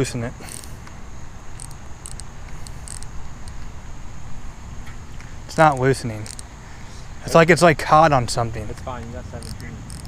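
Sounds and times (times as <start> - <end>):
reel drag ticking: 0.5 - 3.7, 5.2 - 7.4, 8.1 - 10.0.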